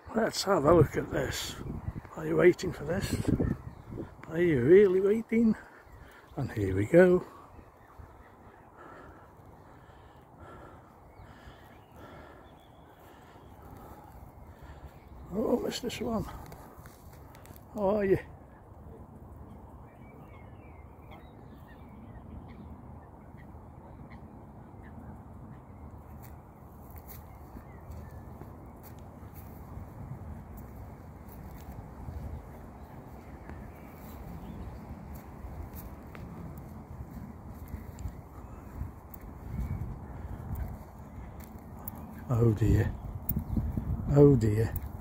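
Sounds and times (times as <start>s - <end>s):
wind rumbling on microphone: 0.7s - 4.5s, 26.4s - 45.0s
rustling of grass and leaves: 0.8s - 18.9s, 26.1s - 45.0s.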